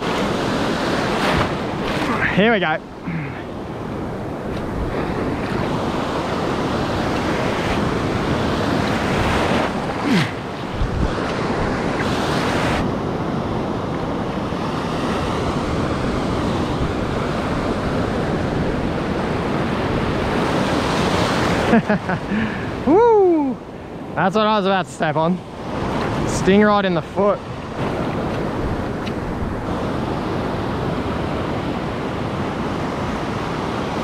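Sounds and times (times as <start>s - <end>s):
surf washing through shallows: 0.0s - 34.0s.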